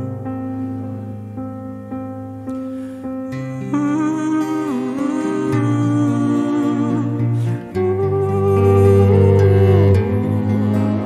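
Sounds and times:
grand piano chords: 0.0 - 11.0
wordless vocal with vibrato: 3.4 - 11.0
low sustained bass notes: 3.5 - 11.0.

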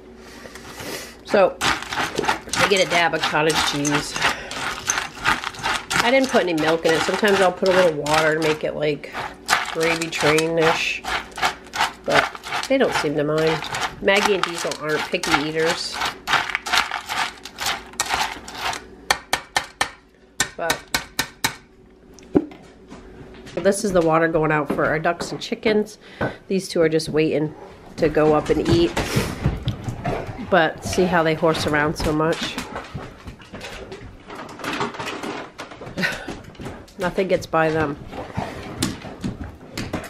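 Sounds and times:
spoon stirring kibble in metal bowl: 1.3 - 18.9.

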